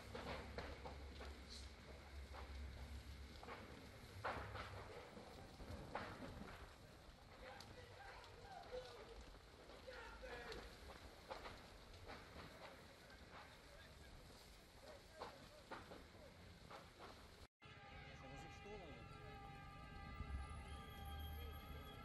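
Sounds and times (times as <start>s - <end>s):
sharp cracks and pops: 0.0s - 17.5s
crackling of a large fire: 0.0s - 22.0s.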